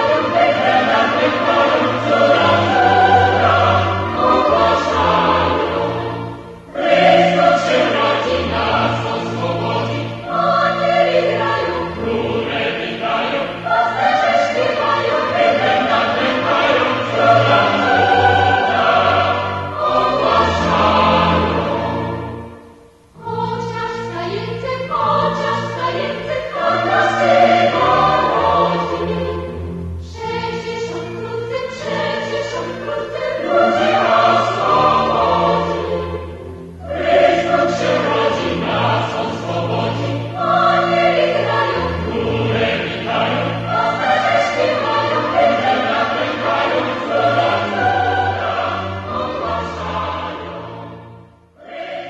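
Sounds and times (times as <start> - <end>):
choir singing: 0.0 - 52.0.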